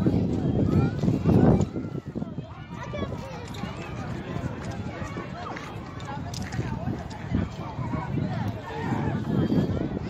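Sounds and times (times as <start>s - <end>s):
distant children calling and chattering: 0.0s - 10.0s
wind buffeting microphone: 0.0s - 10.0s.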